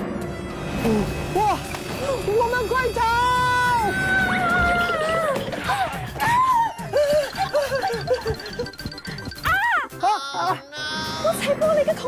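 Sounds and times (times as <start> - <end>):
game music: 4.9 - 10.1
excited wordless vocal cries: 9.4 - 11.4.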